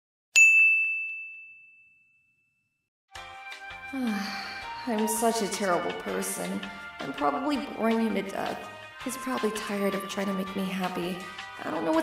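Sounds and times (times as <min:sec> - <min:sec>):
bright bell-like chime ding: 0:00.4 - 0:02.4.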